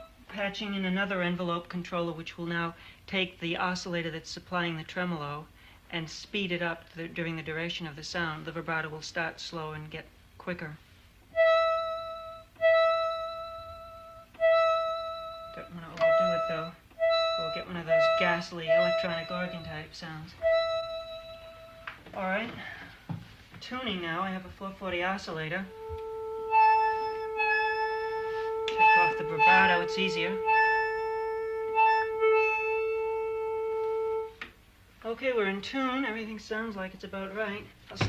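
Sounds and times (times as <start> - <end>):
steady reference tone: 11.4 - 21.9
synthesizer notes with vibrato: 11.4 - 21.9, 25.4 - 34.4.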